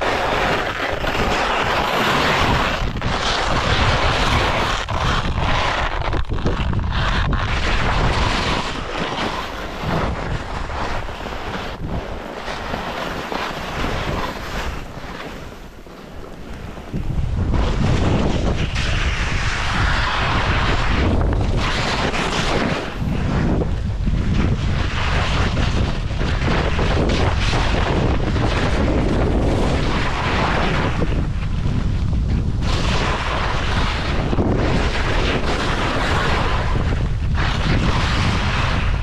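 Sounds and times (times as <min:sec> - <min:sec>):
skis scraping over snow: 0:00.0 - 0:39.0
wind buffeting microphone: 0:00.0 - 0:39.0.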